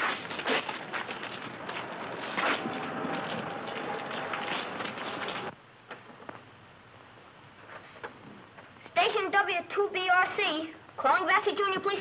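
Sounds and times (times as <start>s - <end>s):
street background hiss: 0.0s - 12.0s.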